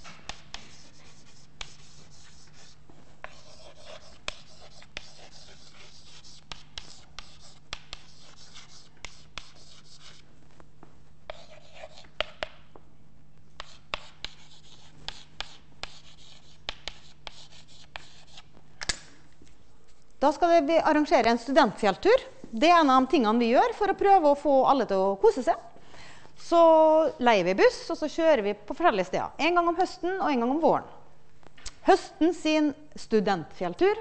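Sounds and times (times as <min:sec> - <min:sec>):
chalk scratching on chalkboard: 0:00.0 - 0:10.2, 0:11.3 - 0:12.6, 0:13.6 - 0:18.5
chalk tapping on chalkboard: 0:00.0 - 0:10.2, 0:11.3 - 0:12.6, 0:13.6 - 0:18.4.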